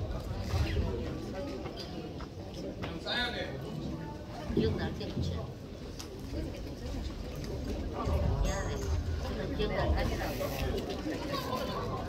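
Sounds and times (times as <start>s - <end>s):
low indistinct voices: 0.0s - 12.0s.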